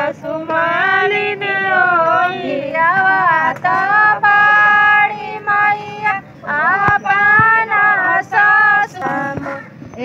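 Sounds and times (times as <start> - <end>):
women singing folk song: 0.0 - 10.0.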